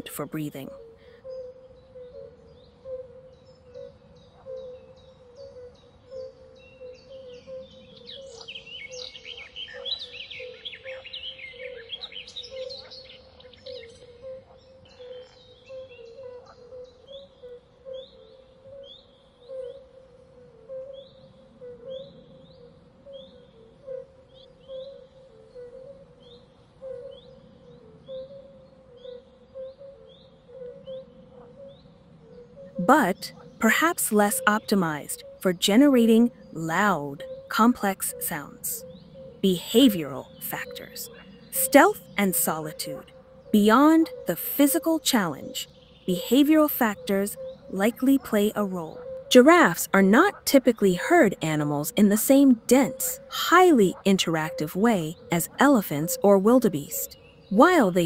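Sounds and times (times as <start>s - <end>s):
birds chirping: 32.7s - 58.0s.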